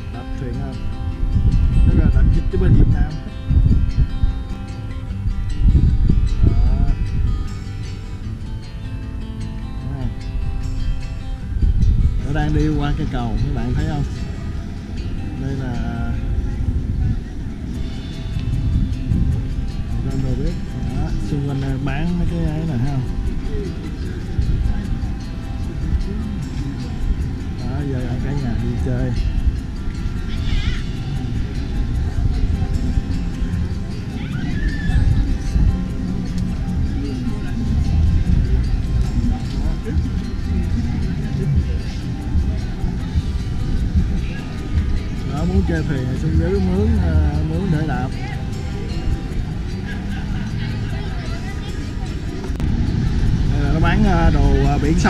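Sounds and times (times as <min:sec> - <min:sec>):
background music with held tones: 0:00.0 - 0:55.0
steady low rumble: 0:00.0 - 0:55.0
voices: 0:00.0 - 0:55.0
high wavering sound: 0:09.8 - 0:55.0
low rumbling noise: 0:48.2 - 0:55.0.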